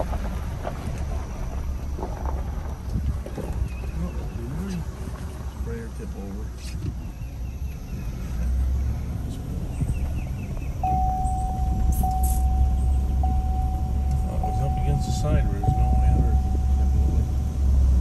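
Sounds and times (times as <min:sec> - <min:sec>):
car road noise rumble: 0:00.0 - 0:18.0
steady single-pitched tone: 0:10.8 - 0:17.7.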